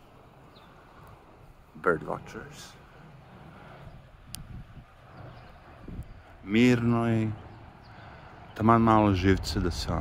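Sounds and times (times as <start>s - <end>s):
faint outdoor rumble: 0.0s - 10.0s.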